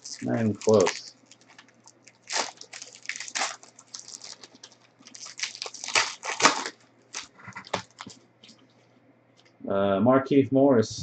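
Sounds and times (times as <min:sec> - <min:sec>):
foil wrapper crinkling and tearing: 0:00.0 - 0:08.6.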